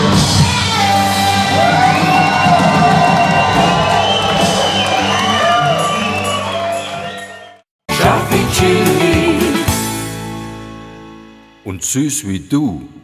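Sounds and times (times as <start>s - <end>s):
live country band playing: 0.0s - 11.6s
crowd cheering and whooping: 1.2s - 7.6s.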